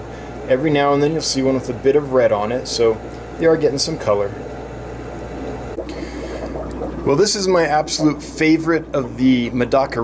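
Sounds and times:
low equipment hum: 0:00.0 - 0:10.0
aquarium water trickling and bubbling: 0:02.7 - 0:10.0.

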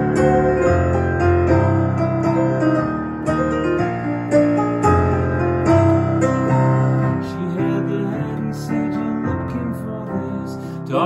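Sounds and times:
digital piano chords: 0:00.0 - 0:11.0.

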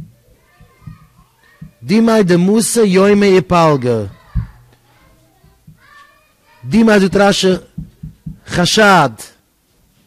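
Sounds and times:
children's voices: 0:00.0 - 0:02.3, 0:03.5 - 0:07.3.

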